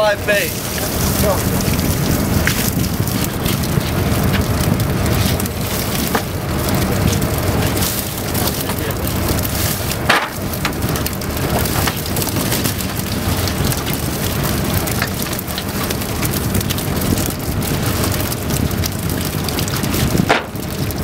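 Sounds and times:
fish splashing in water: 0:00.0 - 0:21.0.

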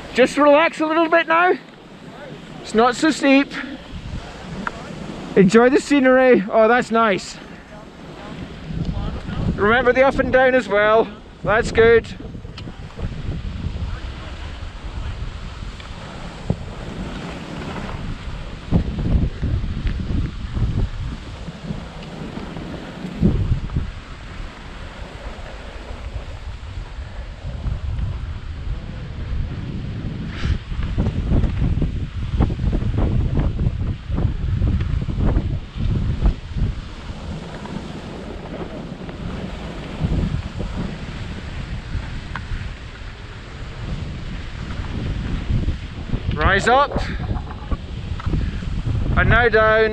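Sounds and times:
skis sliding on snow: 0:00.0 - 0:49.9
wind buffeting microphone: 0:00.0 - 0:49.9.

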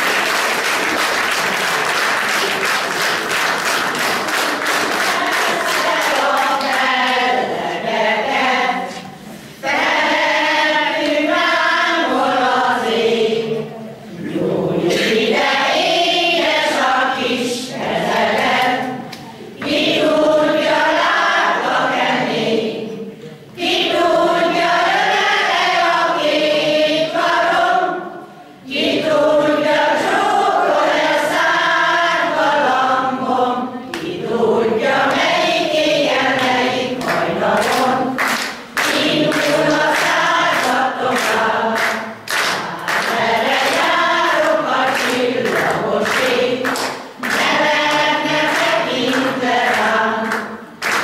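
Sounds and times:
choir singing: 0:01.3 - 0:51.0.

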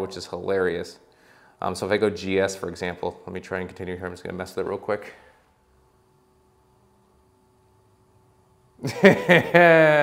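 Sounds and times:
faint steady hum: 0:00.0 - 0:10.0
man laughing: 0:08.8 - 0:10.0.

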